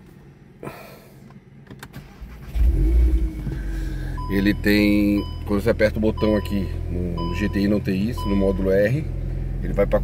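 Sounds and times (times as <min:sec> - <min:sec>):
car engine starting and revving: 0:01.8 - 0:10.0.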